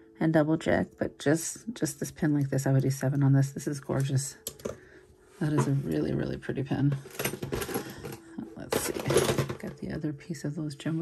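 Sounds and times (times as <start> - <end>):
jewelry clinking and rustling: 5.4 - 10.1
plastic storage bin rattling: 6.8 - 9.9.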